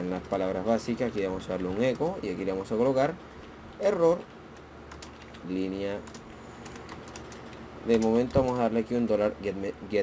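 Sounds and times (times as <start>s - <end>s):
faint keyboard typing: 0.0s - 9.2s.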